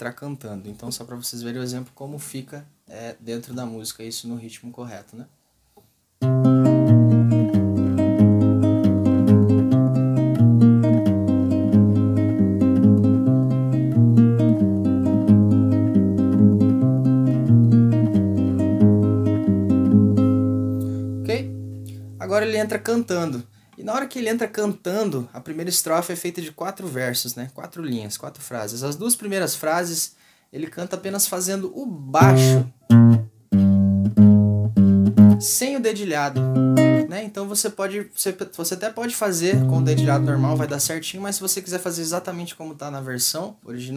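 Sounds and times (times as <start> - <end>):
fingerpicked classical guitar: 6.2 - 23.2, 32.2 - 35.6, 36.3 - 37.1, 39.4 - 40.9.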